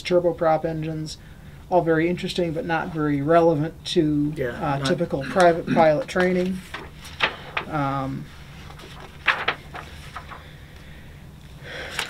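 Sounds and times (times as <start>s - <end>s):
steady low hum: 0.0s - 12.0s
paper pages being handled: 5.0s - 10.5s.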